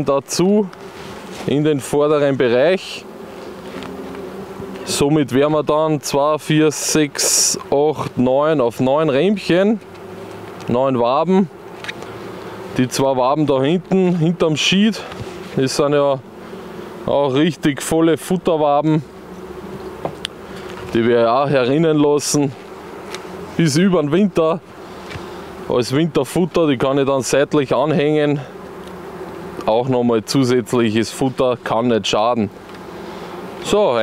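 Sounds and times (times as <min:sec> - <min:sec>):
bees buzzing: 0:00.0 - 0:34.0.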